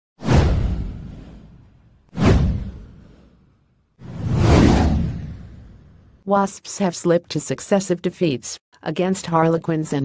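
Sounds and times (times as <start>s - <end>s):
whoosh with deep low end: 0.2s - 6.2s.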